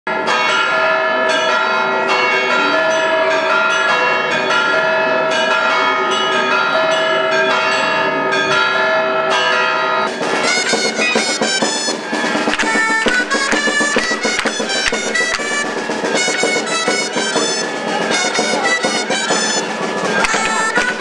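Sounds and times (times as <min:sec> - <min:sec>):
church bells ringing a peal: 0:00.1 - 0:21.0.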